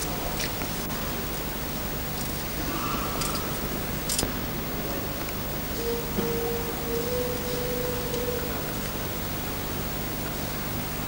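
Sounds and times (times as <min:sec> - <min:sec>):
single steady note: 0:05.8 - 0:09.9.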